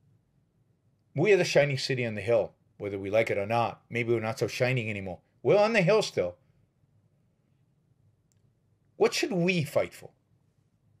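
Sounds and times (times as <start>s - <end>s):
faint click: 8.2s - 8.6s.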